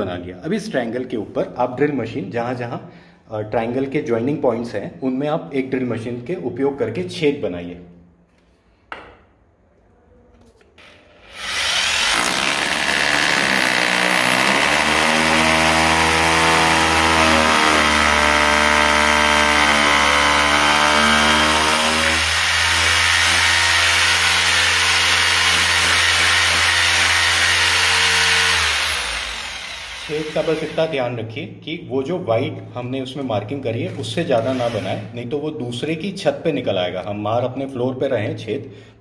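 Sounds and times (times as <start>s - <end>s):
electric drill boring into tile: 10.8s - 31.0s, 34.4s - 35.1s.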